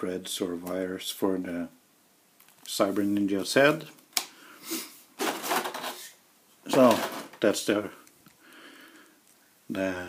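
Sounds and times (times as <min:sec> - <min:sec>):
plastic packaging crinkling: 0:05.2 - 0:06.1.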